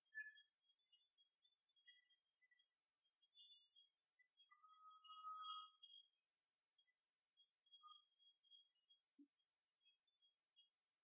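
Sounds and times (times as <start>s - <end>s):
faint high tones: 4.5s - 5.8s.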